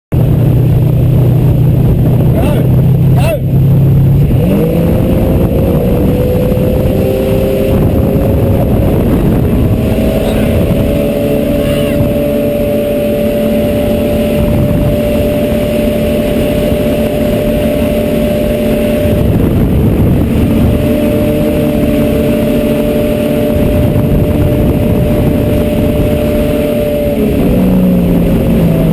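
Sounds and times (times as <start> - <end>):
motorboat engine droning: 0.1 - 28.9.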